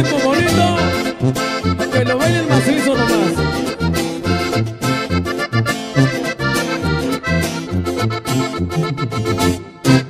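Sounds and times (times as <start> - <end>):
accordion melody: 0.0 - 10.0
strummed acoustic guitar: 0.0 - 10.0
tuba bass line: 0.0 - 10.0.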